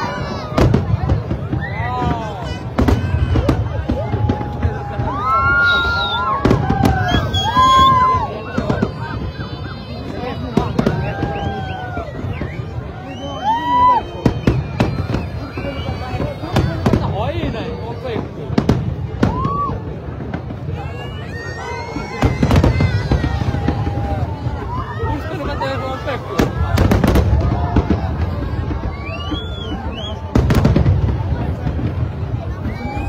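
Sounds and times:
crowd voices and shouts: 0.0 - 33.0
deep fireworks booms: 0.0 - 33.0
fireworks bangs: 0.0 - 33.0.

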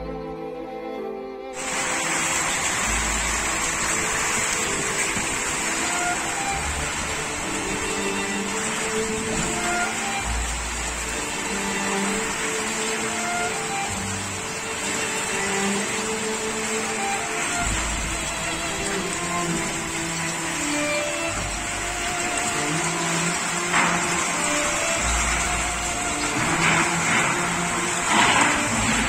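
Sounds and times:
faint string music: 0.0 - 29.0
wind and rain storm: 1.6 - 29.0.

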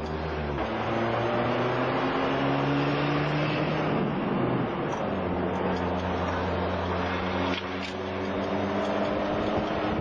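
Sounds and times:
road noise: 0.0 - 10.0
vehicle engine running: 0.0 - 10.0
wind noise: 3.4 - 10.0.

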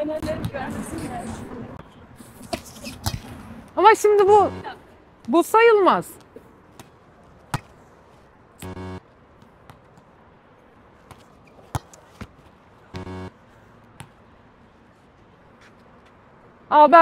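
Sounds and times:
short flat buzzing tone: 8.6 - 9.0, 13.0 - 13.4.

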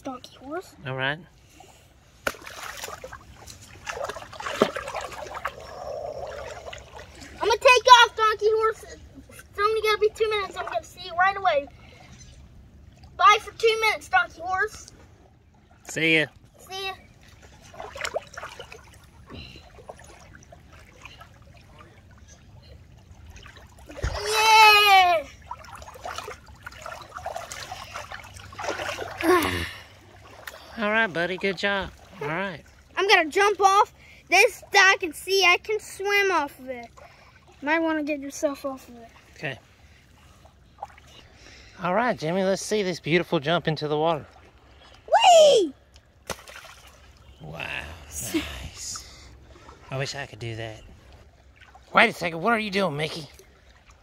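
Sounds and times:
shallow water splashing: 0.0 - 54.0
toy splashing into water: 2.2 - 5.6, 46.2 - 47.1
high-pitched voice calling out: 45.1 - 45.8.

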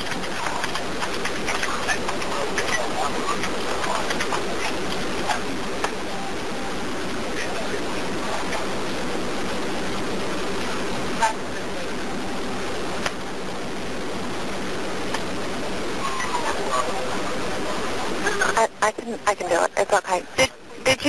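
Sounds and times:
faint voices: 0.0 - 21.0
phone line hiss: 5.9 - 8.1, 10.7 - 14.0, 15.9 - 18.7.

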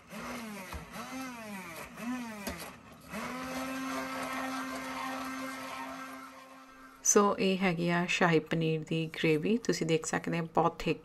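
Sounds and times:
stick blender motor running: 0.0 - 7.2.

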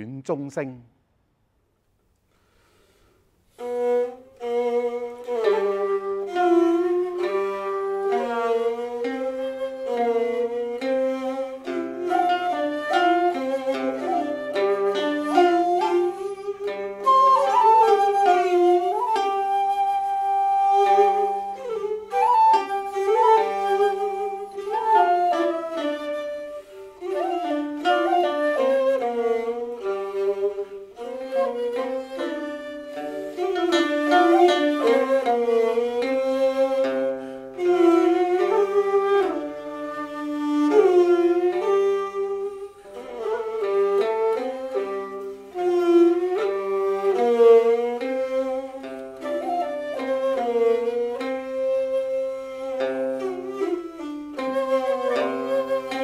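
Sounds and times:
bowed fiddle: 2.4 - 56.0
bamboo flute: 2.9 - 56.0
plucked lute: 3.6 - 56.0.

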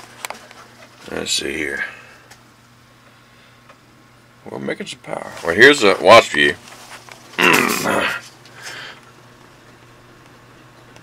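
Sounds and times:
short vocal sound: 7.4 - 8.3.

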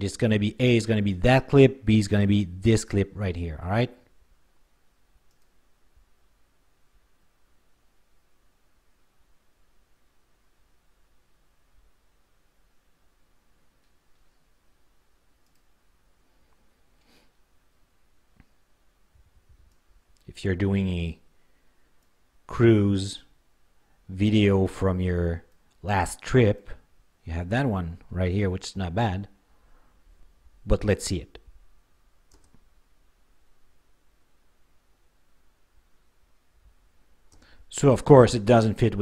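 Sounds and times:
computer mouse click: 5.2 - 5.6, 15.4 - 15.7, 32.3 - 32.7.

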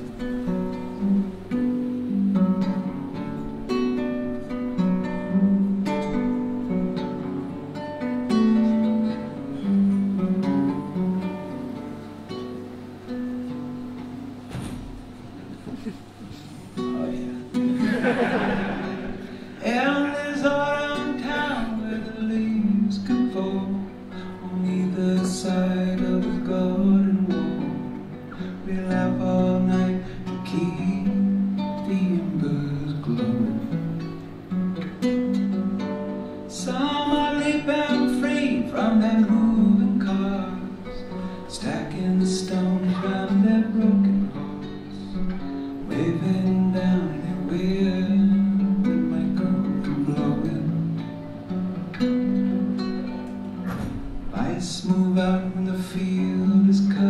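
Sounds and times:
solo acoustic guitar: 0.0 - 57.0.

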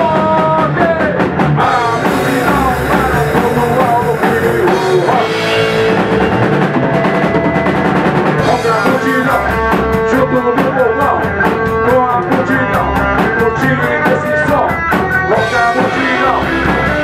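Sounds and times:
rock band playing loudly: 0.0 - 17.0.

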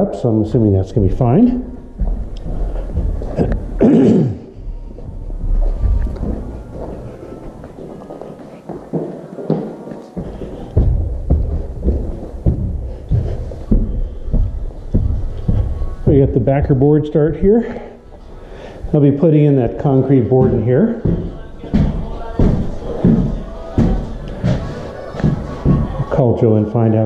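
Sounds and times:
footsteps on carpeted stairs: 0.5 - 26.2.

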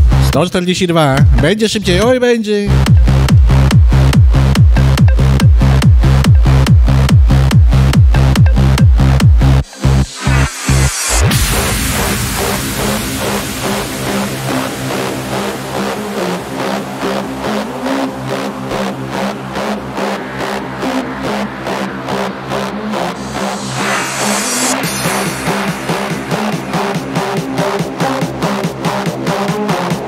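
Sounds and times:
electronic dance music: 0.0 - 30.0
heavy kick drum: 1.2 - 10.2
sustained synth chords: 2.7 - 27.6.

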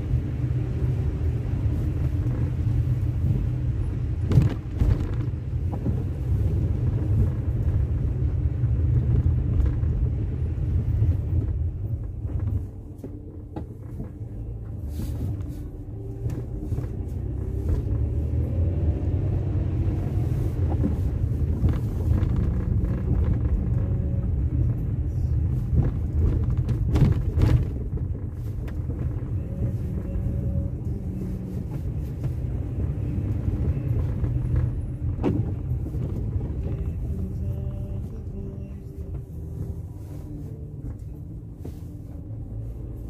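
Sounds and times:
engine and tyre rumble: 0.0 - 43.0.

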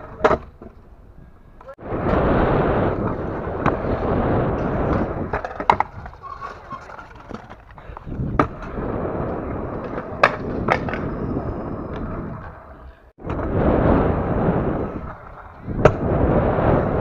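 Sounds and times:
scooter wheels rolling on concrete: 0.0 - 17.0.

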